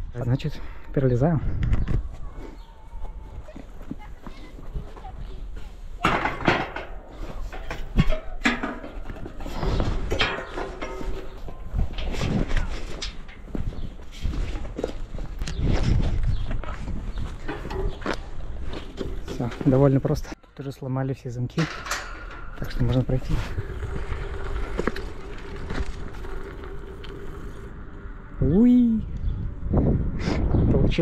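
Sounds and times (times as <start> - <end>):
bike rattling against steel fence: 6.0 - 16.0, 17.1 - 20.4, 21.5 - 27.8.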